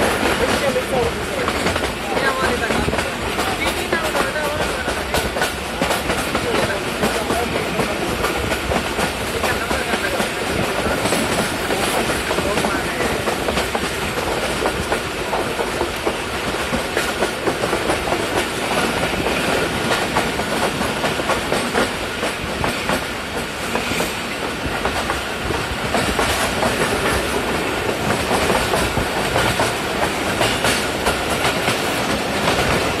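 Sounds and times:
train running rumble: 0:00.0 - 0:33.0.

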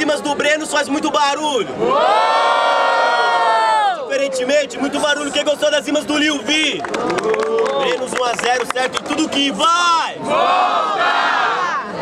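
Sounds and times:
crowd cheering: 0:01.8 - 0:04.2, 0:06.5 - 0:12.0.

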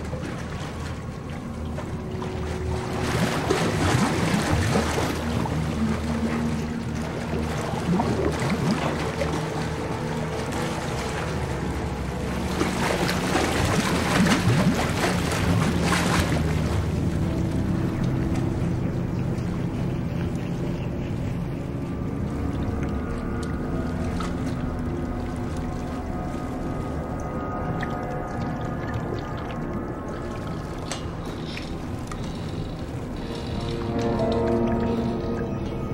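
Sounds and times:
film score music: 0:00.0 - 0:35.9
water churning and splashing: 0:00.0 - 0:35.9.

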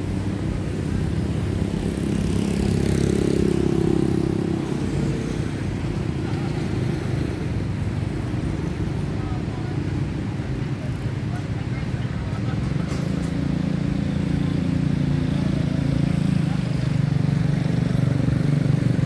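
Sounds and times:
street traffic engine rumble: 0:00.0 - 0:19.0.

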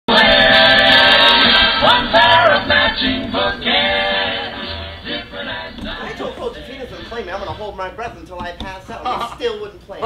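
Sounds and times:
men singing: 0:00.1 - 0:07.8.

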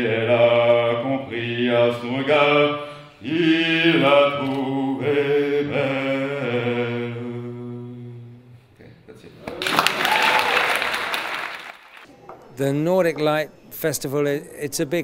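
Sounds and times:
man singing unaccompanied: 0:00.0 - 0:08.4.

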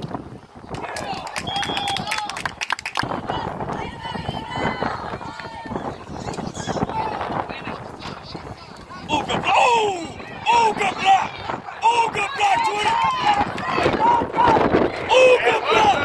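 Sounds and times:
people shouting and calling out: 0:03.0 - 0:16.0.

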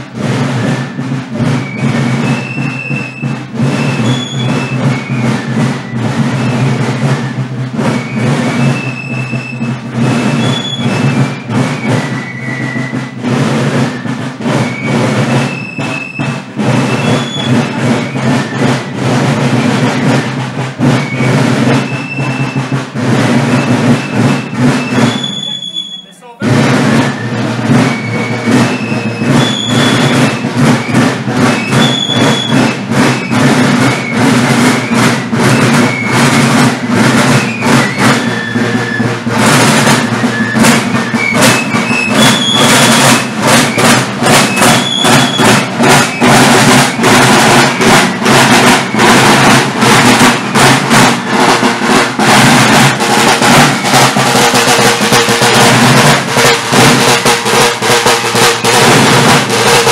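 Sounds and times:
marching field drums: 0:00.0 - 0:59.9.

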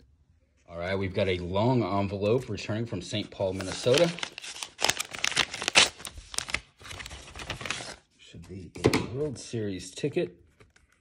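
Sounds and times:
paper envelope tearing and crinkling: 0:03.4 - 0:08.0.

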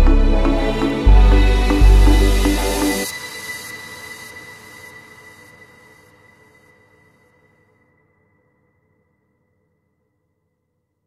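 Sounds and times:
high-pitched tone: 0:00.0 - 0:03.1
background music: 0:00.0 - 0:05.2.

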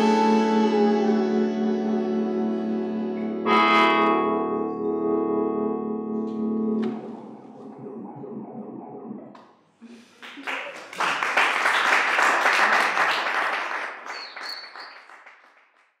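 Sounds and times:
audience applauding: 0:10.0 - 0:16.0.

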